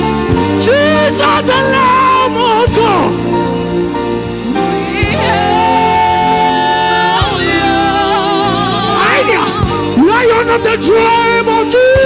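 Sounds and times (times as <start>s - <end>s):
steady bass: 0.0s - 12.0s
sustained keyboard chords: 0.0s - 12.0s.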